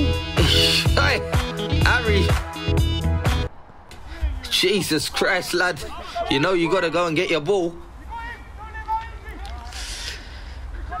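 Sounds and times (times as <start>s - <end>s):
distant shouts of footballers: 7.7s - 9.8s, 10.7s - 11.0s.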